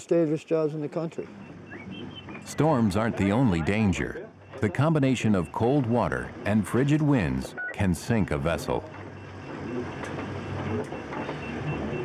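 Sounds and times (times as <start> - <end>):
wind: 0.0 - 12.0
low engine drone: 1.2 - 12.0
waves: 1.2 - 12.0
rapid high beeps: 1.4 - 12.0.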